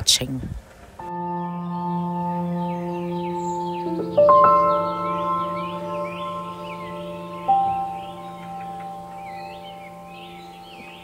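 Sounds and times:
birds chirping: 0:00.0 - 0:11.0
ringing bell-like music: 0:01.1 - 0:11.0.

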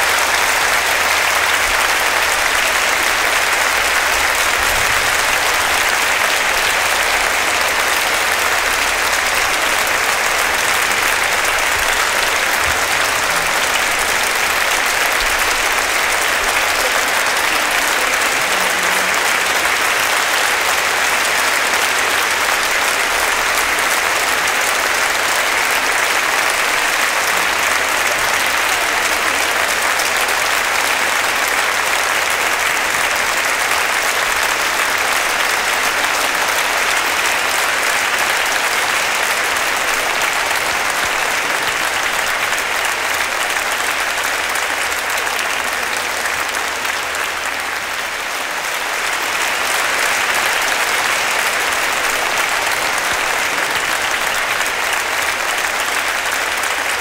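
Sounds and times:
large audience applauding: 0:00.0 - 0:57.0.

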